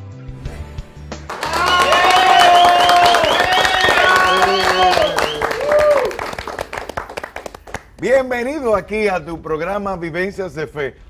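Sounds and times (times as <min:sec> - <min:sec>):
music: 0:00.0 - 0:11.0
voices cheering: 0:01.3 - 0:06.8
clapping and applause: 0:01.3 - 0:08.2.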